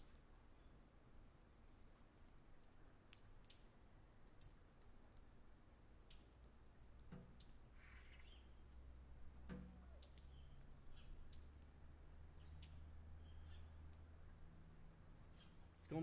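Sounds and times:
faint scattered clicks: 0.0s - 1.6s, 2.2s - 16.0s.

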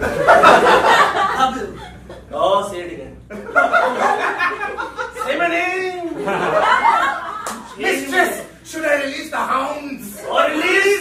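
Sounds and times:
audience laughing: 0.0s - 2.3s, 3.3s - 5.5s, 6.1s - 7.8s.

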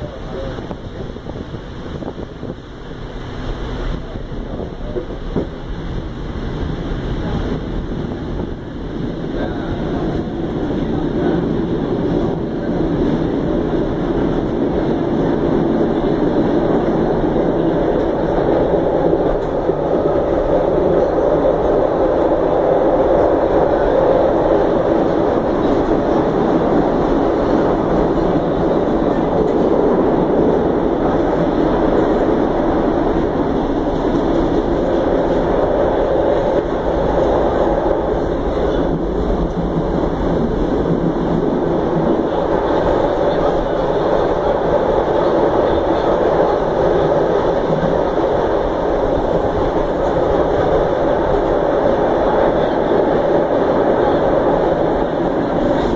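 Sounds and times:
subway train wheels rumbling on rails: 0.0s - 55.9s.

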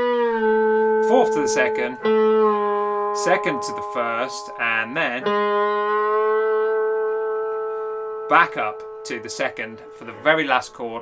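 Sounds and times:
slide electric guitar note: 0.0s - 11.0s.

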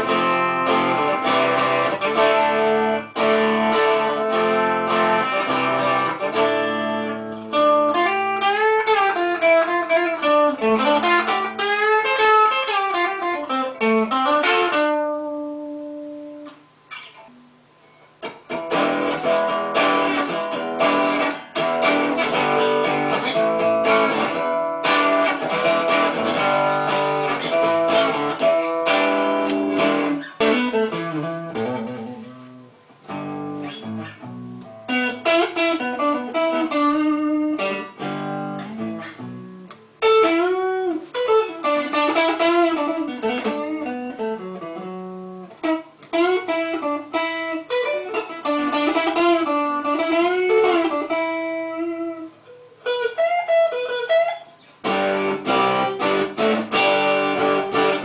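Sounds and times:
out of tune electric guitar: 0.0s - 58.0s.

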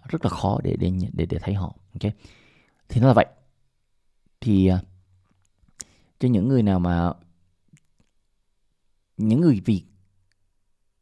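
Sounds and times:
man's voice: 9.2s - 9.9s.

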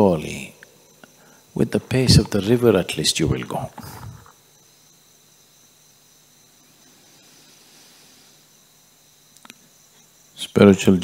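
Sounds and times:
background hiss: 0.0s - 11.0s
insects chirring: 0.0s - 11.0s.

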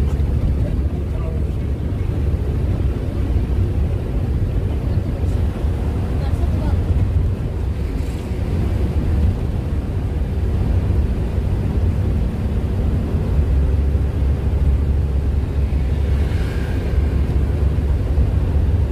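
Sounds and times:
van driving inside cabin: 0.0s - 18.9s.

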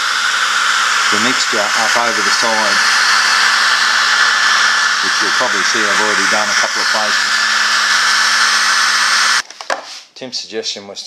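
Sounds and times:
hair dryer blowing: 0.0s - 9.4s.

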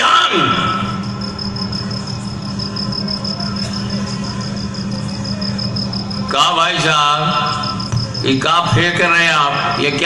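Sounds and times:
low electrical hum: 0.0s - 10.0s
high pulsing chirp: 0.5s - 10.0s.

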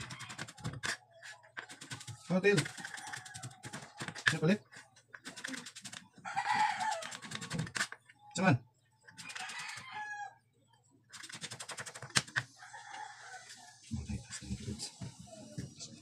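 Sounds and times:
rooster crowing: 6.2s - 7.3s, 9.3s - 10.4s, 12.5s - 13.7s.

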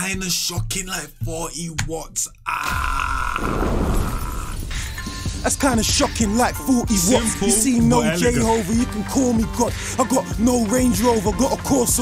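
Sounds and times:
drill beat bass: 0.0s - 2.0s, 4.7s - 12.0s
man yelling distorted: 6.9s - 9.1s.

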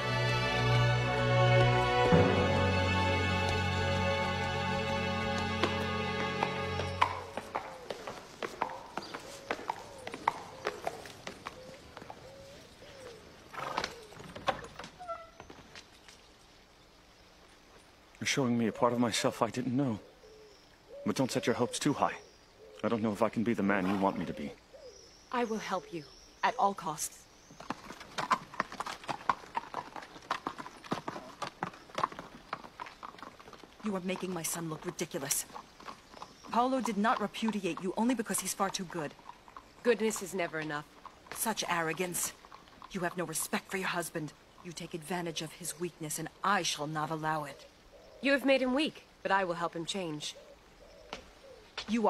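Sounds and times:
horse hooves clip-clopping: 0.0s - 16.5s, 27.4s - 46.4s.

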